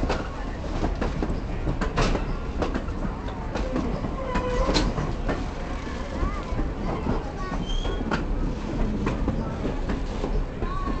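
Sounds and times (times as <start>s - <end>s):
train rumbling on rails: 0.0s - 11.0s
train wheels clacking: 0.0s - 11.0s.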